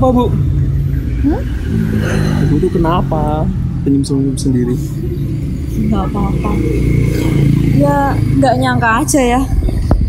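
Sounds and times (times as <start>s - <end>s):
vehicle engine rumbling: 0.0s - 10.0s
wordless vocal sounds: 1.2s - 8.8s.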